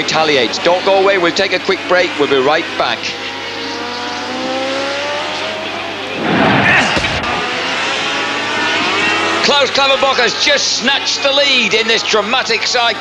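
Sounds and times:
racing engines at high revs: 0:00.0 - 0:13.0.

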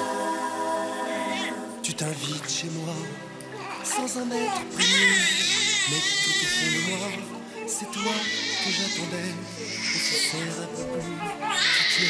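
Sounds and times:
soft background music: 0:00.0 - 0:12.0
newborn baby crying: 0:03.5 - 0:12.0.

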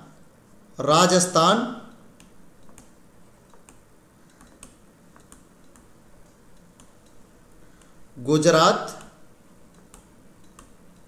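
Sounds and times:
stylus clicks and taps on screen: 0:01.9 - 0:08.1, 0:08.9 - 0:11.0.

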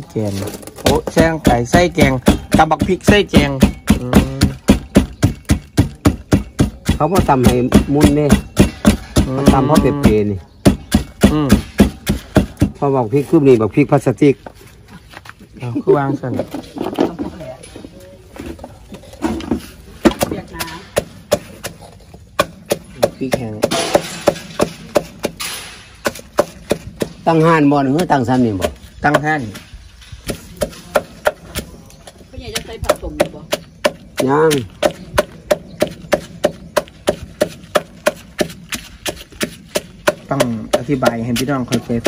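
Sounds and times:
wooden pestle knocking in mortar: 0:00.5 - 0:12.9, 0:19.5 - 0:25.4, 0:26.0 - 0:29.6, 0:30.2 - 0:42.0
knife chopping on wooden board: 0:00.8 - 0:12.8, 0:19.5 - 0:25.4, 0:26.0 - 0:27.2, 0:32.6 - 0:42.0
person speaking: 0:09.2 - 0:10.5.

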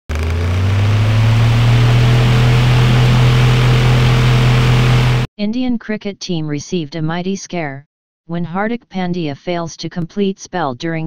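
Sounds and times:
low electronic drone: 0:00.1 - 0:05.3.

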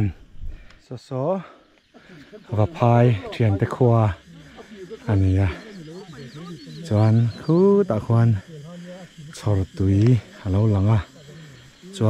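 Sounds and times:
people talking: 0:01.0 - 0:12.0.

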